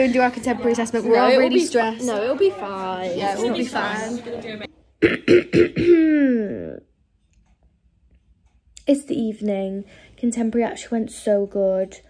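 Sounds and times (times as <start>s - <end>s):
woman clearing her throat: 5.0s - 6.9s.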